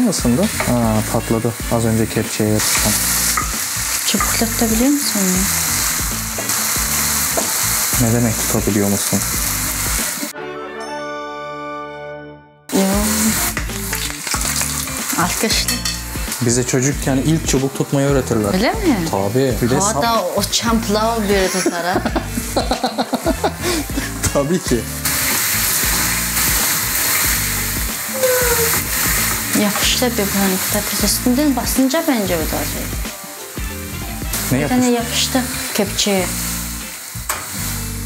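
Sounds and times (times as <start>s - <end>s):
potato slices deep-frying in oil: 0.0s - 10.3s, 12.8s - 38.0s
music with long held notes: 0.0s - 21.3s, 22.0s - 38.0s.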